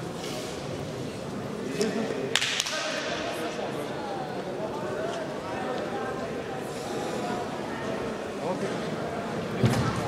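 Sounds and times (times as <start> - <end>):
faint background voices: 0.0 - 10.0
sharp crack echoing in hall: 1.8 - 3.7.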